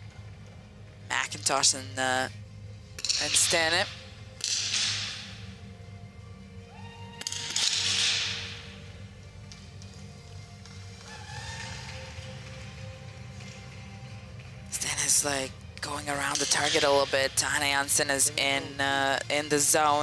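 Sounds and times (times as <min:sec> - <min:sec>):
background music: 0:00.0 - 0:20.0
rifle shots ringing in a hall: 0:04.4 - 0:05.5, 0:07.2 - 0:08.9.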